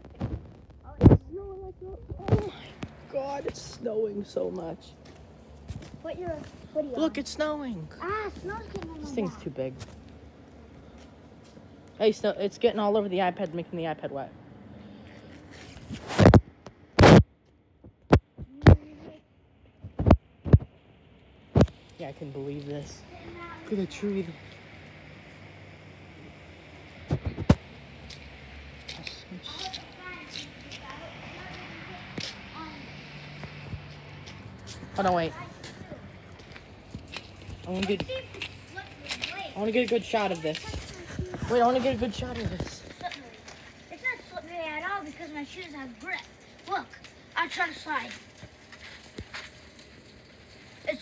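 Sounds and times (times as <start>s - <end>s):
faint outdoor background hiss: 0.0s - 51.0s.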